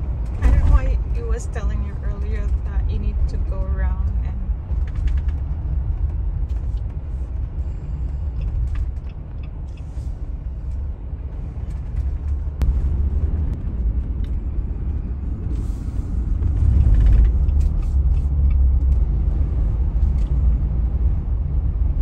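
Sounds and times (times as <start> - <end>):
car road noise rumble: 0.0 - 22.0.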